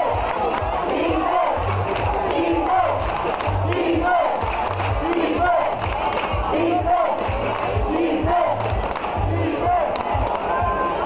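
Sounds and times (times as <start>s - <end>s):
crowd shouting and cheering: 0.0s - 11.0s
music with thumping beat: 0.1s - 10.8s.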